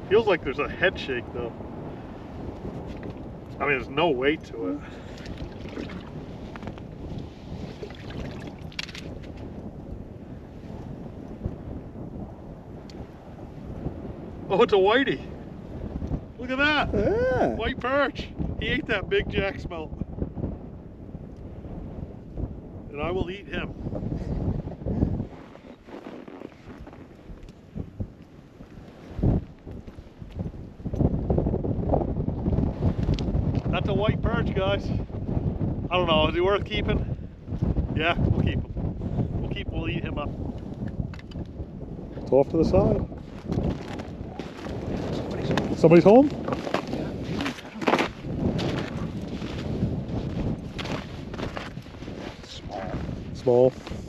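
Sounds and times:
wind buffeting microphone: 0.0s - 54.0s
scratchy rustle: 25.3s - 27.4s.

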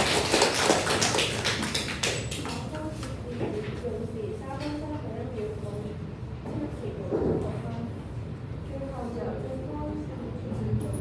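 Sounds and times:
group applauding: 0.0s - 2.7s.

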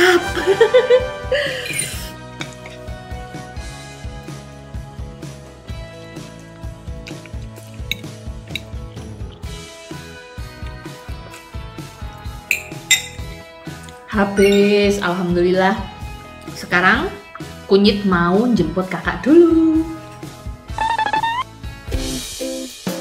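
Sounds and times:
background music: 0.0s - 23.0s
metal fork clinking on plate: 1.6s - 2.7s, 7.8s - 8.7s, 12.5s - 13.3s, 14.4s - 14.8s.

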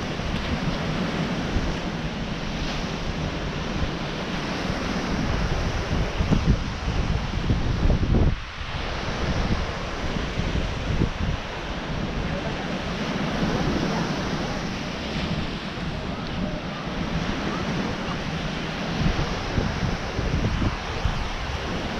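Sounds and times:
ocean surf breaking: 0.0s - 21.9s
wind buffeting microphone: 0.0s - 21.9s.

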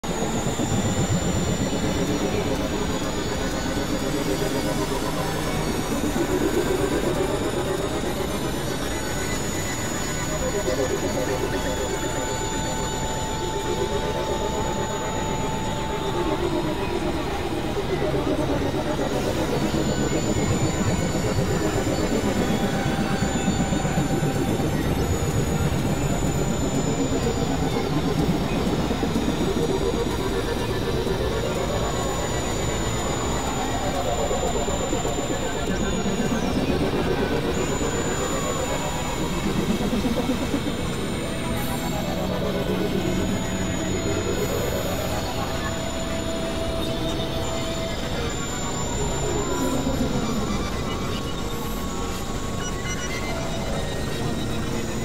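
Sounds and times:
grinding synthesizer drone: 0.0s - 55.0s
thin high whine: 0.1s - 55.0s.

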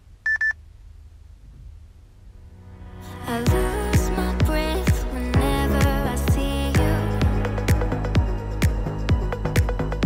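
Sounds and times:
short electronic beeps: 0.2s - 0.6s.

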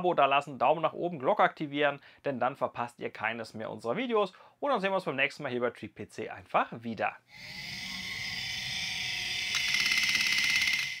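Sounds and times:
buzzing synthetic tone: 7.3s - 11.0s.

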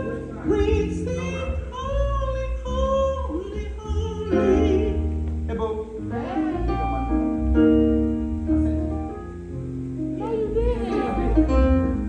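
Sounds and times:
group singing worship song: 4.3s - 5.0s, 6.0s - 7.2s, 10.6s - 11.8s.

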